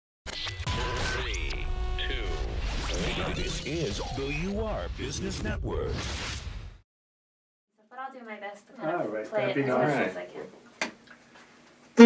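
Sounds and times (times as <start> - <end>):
synthesized beeps: 0.7 - 4.2.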